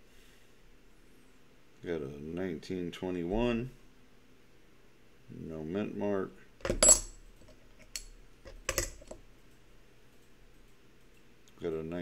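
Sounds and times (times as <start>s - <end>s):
coins clicking together: 6.6s - 9.2s.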